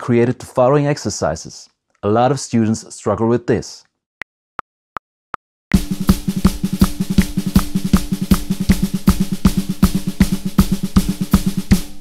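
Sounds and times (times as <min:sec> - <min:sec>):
bass drum: 0:05.7 - 0:12.0
hi-hat foot pattern: 0:05.7 - 0:12.0
snare drum double strokes: 0:05.8 - 0:12.0.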